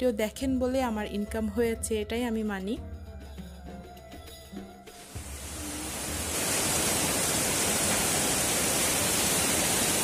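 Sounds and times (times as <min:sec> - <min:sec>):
heavy rain pouring: 0:05.0 - 0:10.0.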